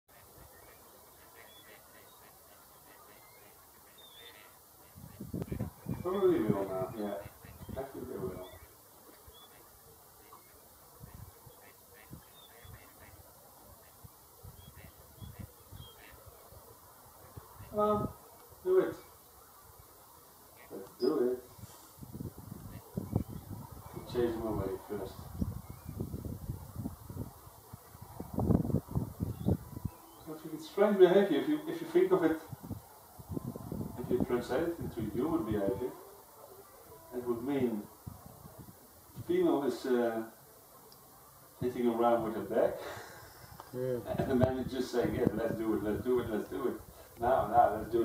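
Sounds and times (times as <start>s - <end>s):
harsh low duck calls: 0.1s - 32.6s
wind buffeting microphone: 4.8s - 9.4s, 10.8s - 18.8s, 21.5s - 30.2s, 32.3s - 36.0s, 37.6s - 39.4s, 43.2s - 48.0s.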